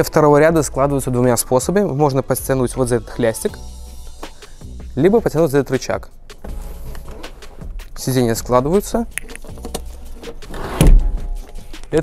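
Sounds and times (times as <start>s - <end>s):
seat mechanism clicks and rattles: 6.4s - 7.6s, 9.2s - 11.6s
heavy seat thump: 6.4s - 7.8s, 9.6s - 11.3s.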